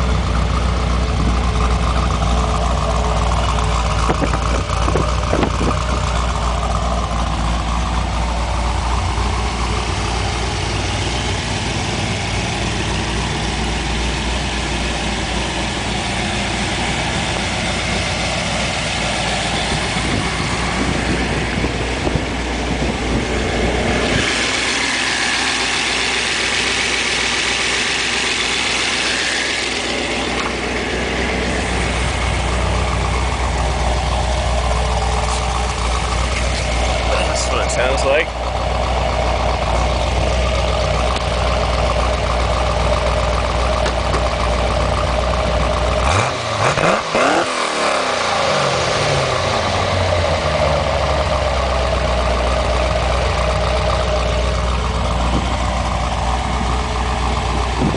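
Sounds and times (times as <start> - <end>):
car engine idling: 0.0 - 57.9.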